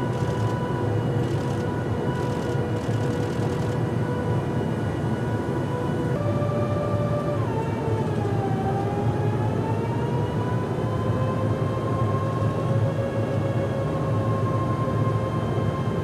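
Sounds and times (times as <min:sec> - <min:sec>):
engine whining tone: 0:00.0 - 0:16.0
jet engine drone: 0:00.0 - 0:16.0.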